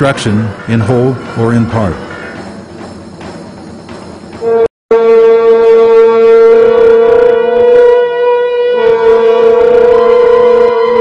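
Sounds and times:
held wind instrument note: 0:04.4 - 0:11.0.

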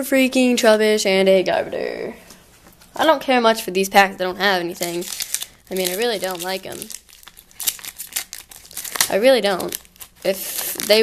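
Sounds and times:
foil wrapper crinkling: 0:04.5 - 0:11.0
cards being handled: 0:04.7 - 0:11.0.

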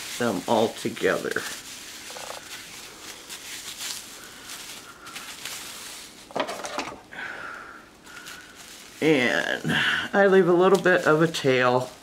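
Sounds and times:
plastic bag strips crinkling: 0:00.0 - 0:07.2, 0:07.8 - 0:12.0.

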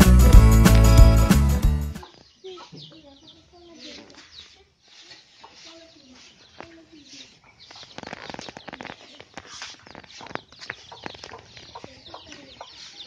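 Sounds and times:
hens clucking: 0:02.0 - 0:13.0
shovels scraping grain: 0:03.8 - 0:13.0.

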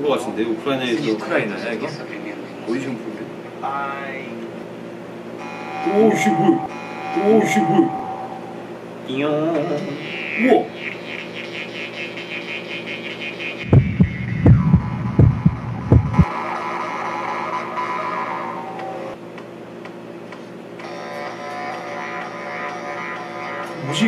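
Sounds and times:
throat-singing overtone drone: 0:05.4 - 0:19.2, 0:20.8 - 0:24.0
heavy low thumps: 0:13.7 - 0:16.3.

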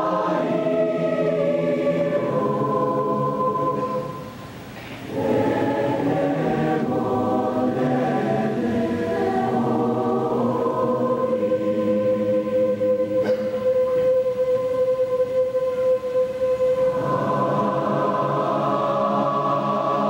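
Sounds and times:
choir singing: 0:00.0 - 0:04.4, 0:05.0 - 0:20.0.

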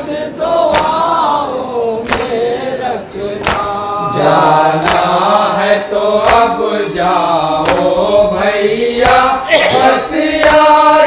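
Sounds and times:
men chanting a lament: 0:00.0 - 0:11.0
chest-beating slaps: 0:00.7 - 0:01.0, 0:02.0 - 0:02.4, 0:03.4 - 0:03.7, 0:04.8 - 0:05.1, 0:07.6 - 0:07.9.

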